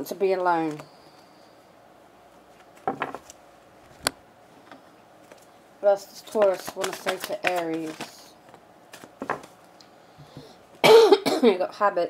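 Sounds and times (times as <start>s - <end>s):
cards being handled ticks: 6.2s - 9.8s
person coughing: 10.8s - 11.6s.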